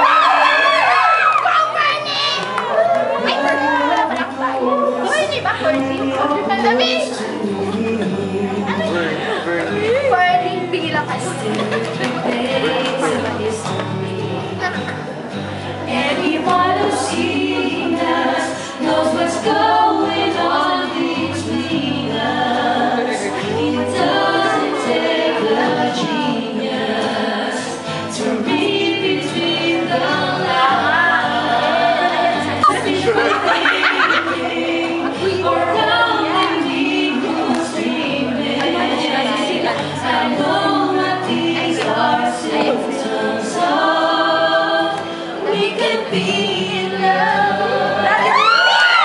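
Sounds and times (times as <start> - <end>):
musical accompaniment: 0.0 - 49.0
man and woman singing duet: 2.6 - 49.0.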